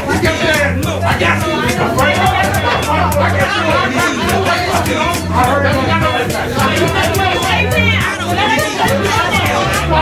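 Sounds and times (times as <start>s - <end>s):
crowd chatter: 0.0s - 10.0s
music with steady beat and bass: 0.0s - 10.0s.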